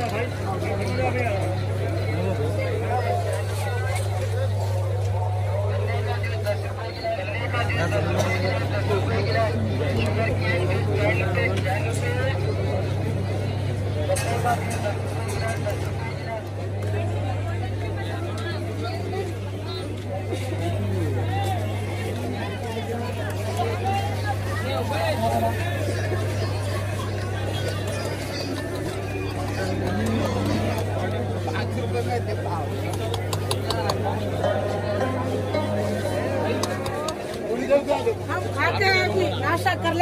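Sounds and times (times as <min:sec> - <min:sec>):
crowd babble: 0:00.0 - 0:40.0.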